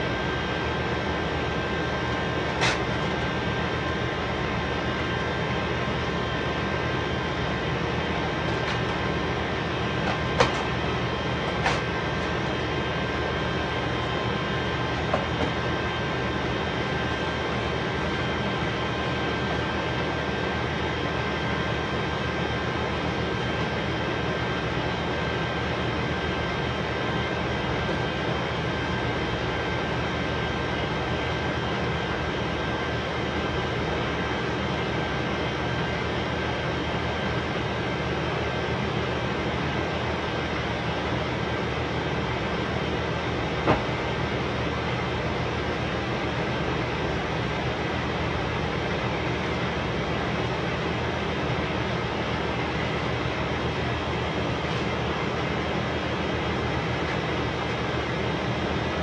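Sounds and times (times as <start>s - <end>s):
mechanical drone with whine: 0.0s - 59.0s.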